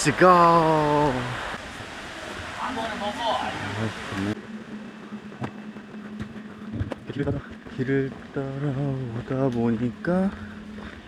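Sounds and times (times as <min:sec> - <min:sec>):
creek rushing: 0:00.0 - 0:04.4.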